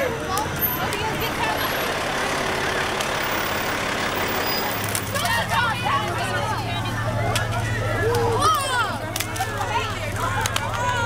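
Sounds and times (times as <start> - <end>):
low engine hum: 0.0 - 11.0
vehicles and street noise: 0.0 - 11.0
voices calling out: 0.0 - 11.0.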